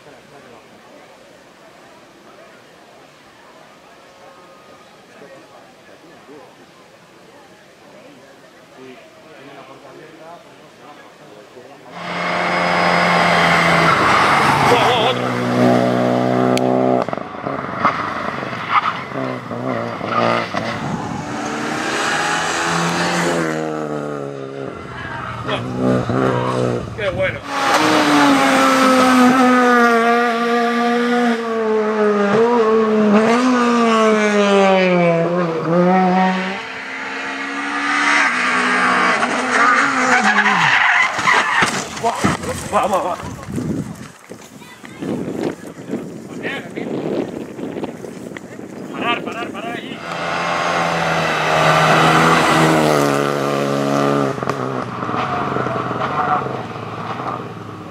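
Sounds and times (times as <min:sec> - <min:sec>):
rally car engines revving: 0:11.8 - 0:44.0, 0:45.2 - 0:57.9.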